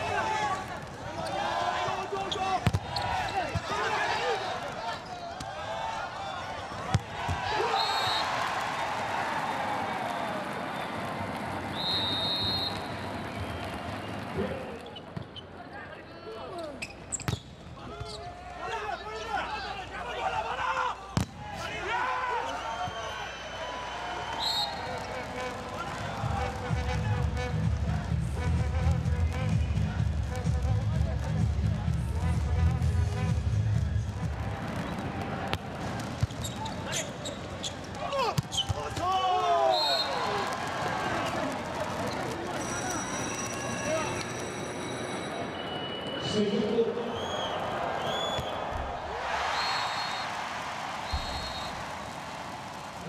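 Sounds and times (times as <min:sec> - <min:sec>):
arena crowd noise: 0:00.0 - 0:53.0
volleyball hits: 0:02.6 - 0:03.9, 0:06.7 - 0:08.3, 0:48.1 - 0:49.0
shoes squeaking on court floor: 0:11.7 - 0:15.7, 0:16.6 - 0:18.4, 0:36.0 - 0:38.9, 0:41.2 - 0:46.4.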